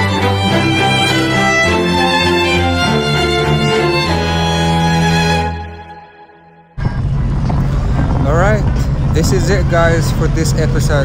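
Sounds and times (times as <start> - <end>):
jet ski engine running: 6.8 - 11.0
wind noise on microphone: 6.8 - 11.0.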